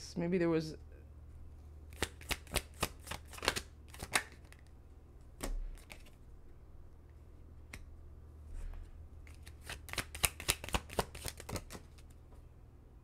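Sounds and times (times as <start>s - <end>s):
crisp card snaps and flicks: 1.9s - 4.8s, 5.4s - 6.2s, 9.3s - 12.2s
cards being shuffled: 1.9s - 6.2s, 8.7s - 12.3s.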